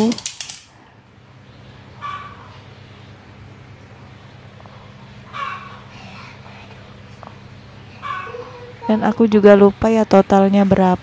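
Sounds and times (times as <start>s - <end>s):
chicken calling: 2.0s - 2.6s, 5.3s - 5.9s, 8.0s - 9.0s.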